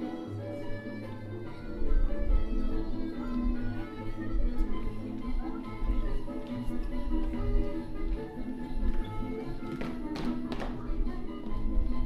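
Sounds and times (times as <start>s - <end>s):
dance music: 0.0s - 12.0s
feet tapping on wooden stage: 1.4s - 12.0s.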